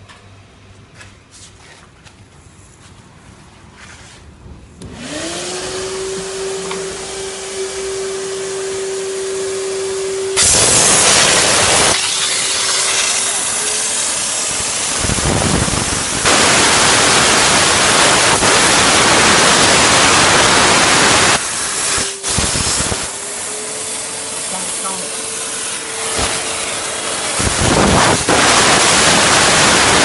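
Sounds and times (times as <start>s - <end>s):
cleaner motor humming: 4.8s - 30.0s
steam jets hissing: 10.3s - 30.0s.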